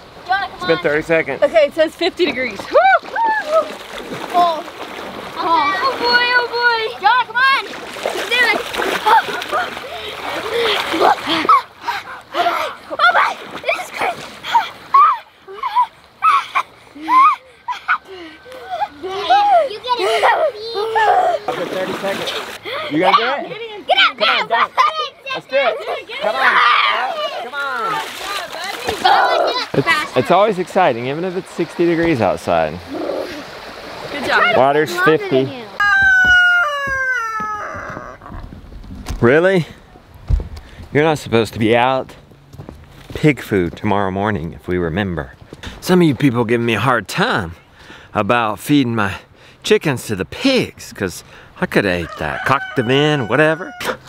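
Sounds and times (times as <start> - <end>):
water splashing: 0.0 - 41.9
children and adult yelling: 2.6 - 4.7, 5.3 - 30.6, 34.2 - 38.2, 51.8 - 53.8
rooster crowing: 35.8 - 38.2, 52.0 - 54.0.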